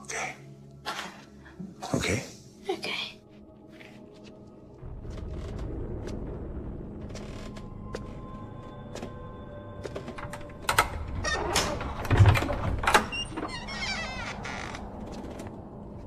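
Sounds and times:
quiet sustained music: 0.0 - 16.0.

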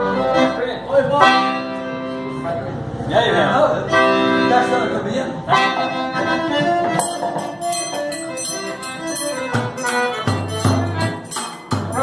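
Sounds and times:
accordion music: 0.0 - 12.0
frame tambourine beat: 7.0 - 12.0.

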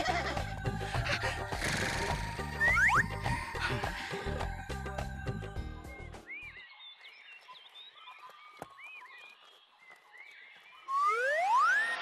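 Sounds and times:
rising whistle-like glide: 10.9 - 12.0.

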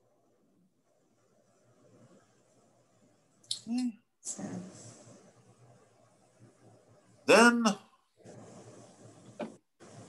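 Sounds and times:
faint background hiss: 0.0 - 10.0.

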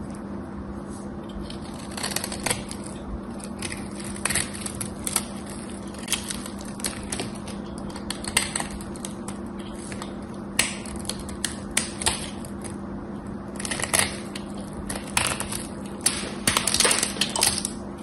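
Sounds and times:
crackling of soap flakes: 0.0 - 18.0.

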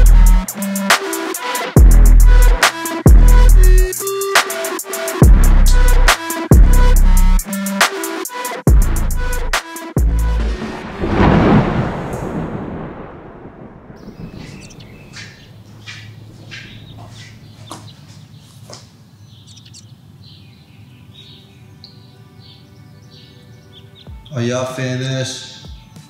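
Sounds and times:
deep boom: 10.1 - 15.3
birds chirping: 12.4 - 26.0.

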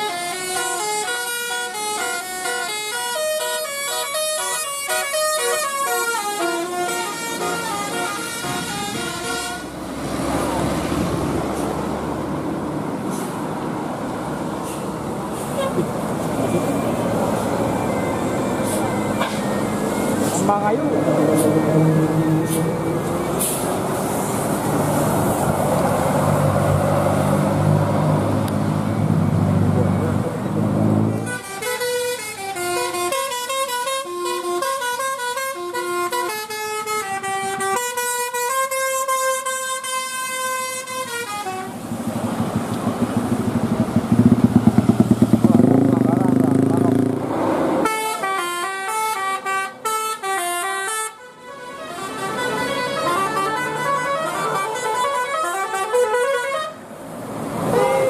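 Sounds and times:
multi-tone bus horn melody: 0.0 - 9.9, 15.4 - 25.2, 30.8 - 41.9, 47.8 - 57.0, 57.6 - 58.0
heavy bus engines running: 0.0 - 58.0.

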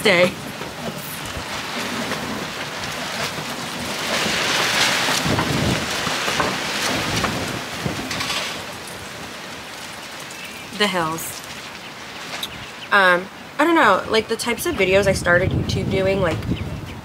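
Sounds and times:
wind gust rushing: 3.9 - 9.9, 14.0 - 17.0.

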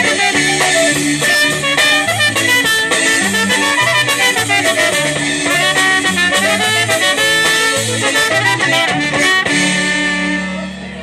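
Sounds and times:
polka band playing: 0.0 - 11.0.

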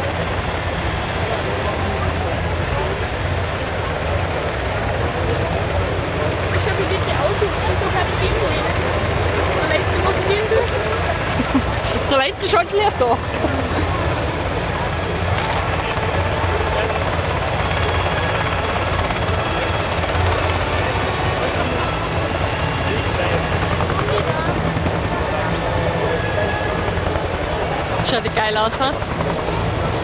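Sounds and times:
helicopter flying by: 0.0 - 30.0.

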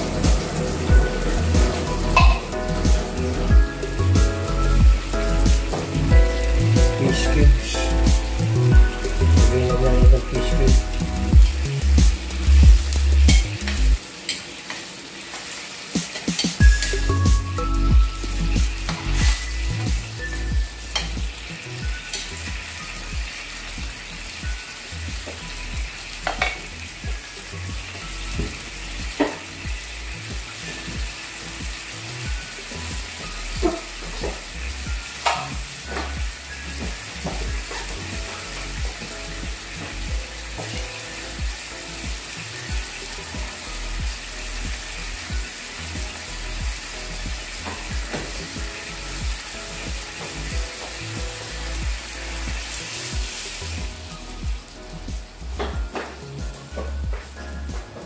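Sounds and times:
sauce sizzling in a wok: 0.0 - 58.0
metal spatula knocking on pan: 2.2 - 2.5, 26.3 - 26.6.

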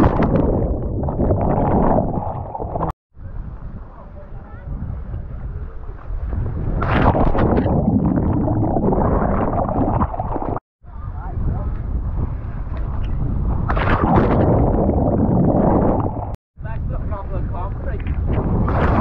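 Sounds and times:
churning water and bubbles: 0.0 - 3.0, 6.1 - 10.6, 13.0 - 16.4, 18.2 - 19.0
wind on microphone: 0.0 - 19.0.

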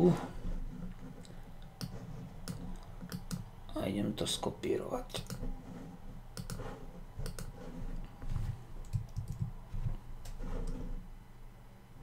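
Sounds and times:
sharp computer clicks: 1.8 - 3.5, 5.1 - 5.4, 6.3 - 6.6, 7.2 - 7.6, 8.8 - 9.5.

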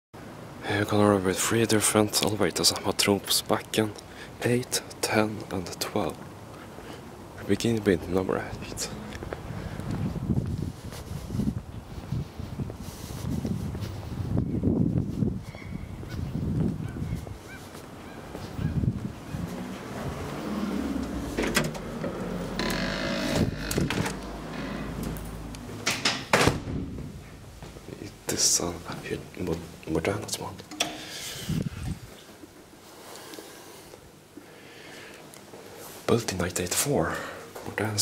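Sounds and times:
walking and handling rumble: 2.0 - 34.5
glass door opening and closing: 19.3 - 27.4
door handle and latch clicks: 21.3 - 27.0.

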